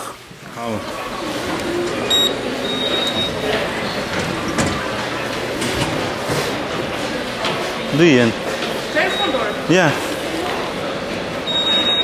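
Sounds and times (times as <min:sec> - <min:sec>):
indistinct voices: 0:00.0 - 0:12.0.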